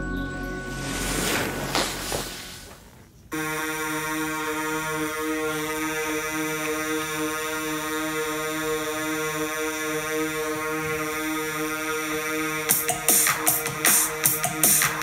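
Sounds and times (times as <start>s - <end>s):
low pulsing synth note: 0.0s - 12.9s
buzzy synthesizer chord: 0.0s - 15.0s.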